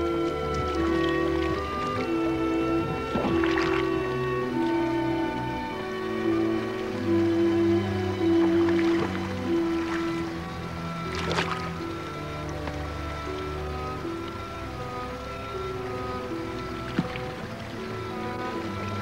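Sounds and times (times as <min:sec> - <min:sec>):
slow background music: 0:00.0 - 0:19.0.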